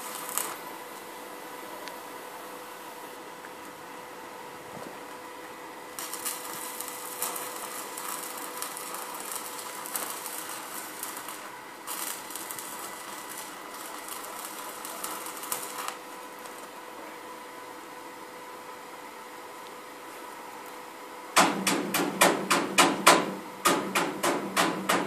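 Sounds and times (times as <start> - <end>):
arc welding crackle and sizzle: 0.0 - 25.0.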